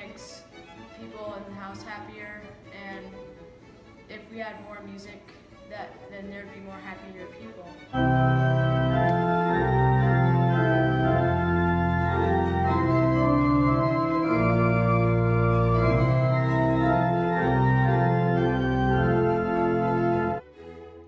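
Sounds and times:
church organ playing chords: 7.9 - 20.4.

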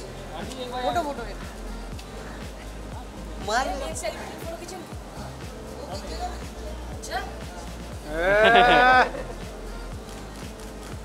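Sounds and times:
background music with steady beat: 0.0 - 11.0
person's drawn-out vocal cry: 8.1 - 9.1.

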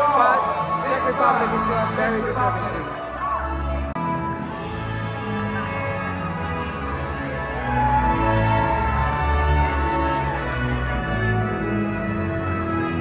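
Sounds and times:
music with long held notes: 0.0 - 13.0.

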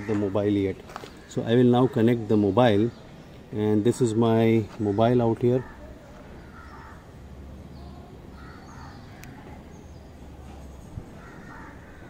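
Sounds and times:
faint bird calls: 0.0 - 12.0.

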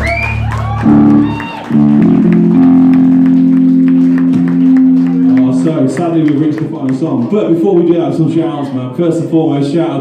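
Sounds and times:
high sliding guitar squeals: 0.0 - 2.8
rock band distorted chords: 0.0 - 6.1.

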